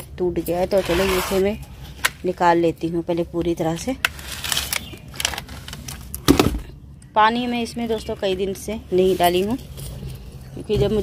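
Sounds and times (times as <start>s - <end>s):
thin plastic pot crackling: 3.7s - 6.2s.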